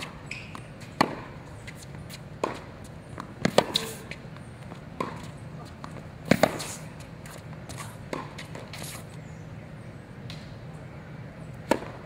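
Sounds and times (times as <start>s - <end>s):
tennis racket hitting ball: 0.0s - 9.0s, 11.7s - 12.0s.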